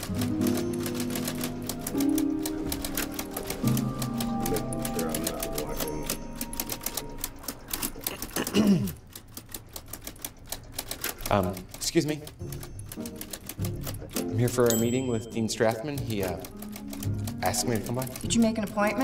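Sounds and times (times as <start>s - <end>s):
film music sustained tones: 0.0s - 8.8s
typewriter keys clattering: 0.0s - 19.0s.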